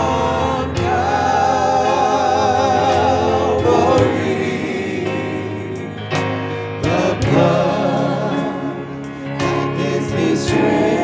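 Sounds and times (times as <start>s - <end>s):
keyboard accompaniment: 0.0s - 11.0s
voices singing together: 0.0s - 11.0s.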